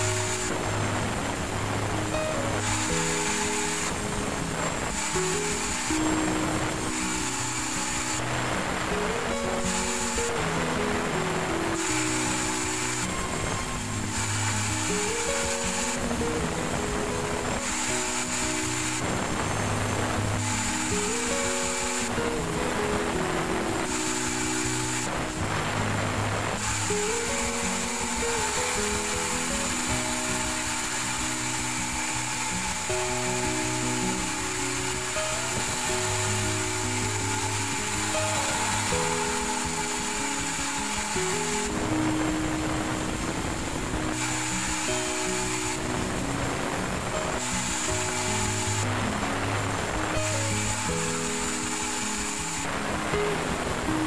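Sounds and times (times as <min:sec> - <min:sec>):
background music with melody: 0:00.0 - 0:54.0
band saw cutting log: 0:23.6 - 0:53.1.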